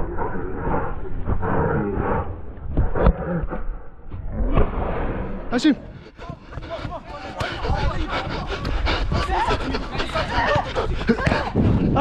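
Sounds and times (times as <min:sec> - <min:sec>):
heavy panting: 0:05.8 - 0:12.0
players shouting: 0:06.1 - 0:12.0.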